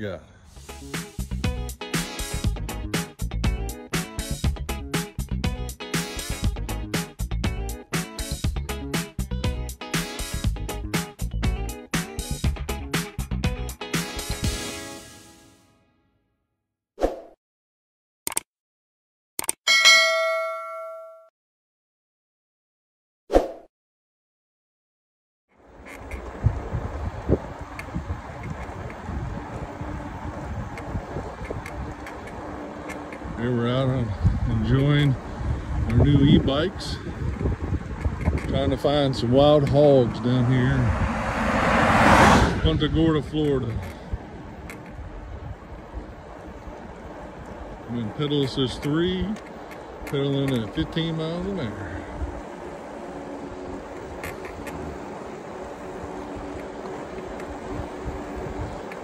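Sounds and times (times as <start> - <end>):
double mouse clicks: 19.4 - 19.6
notification bell ding: 19.7 - 21.3
tyre noise on asphalt: 25.6 - 59.0
wind on microphone: 26.0 - 33.4, 34.0 - 47.9, 57.4 - 59.0.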